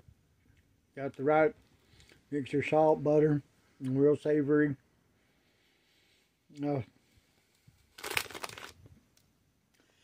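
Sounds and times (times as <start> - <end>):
plastic snack bag crinkling: 7.9 - 8.8.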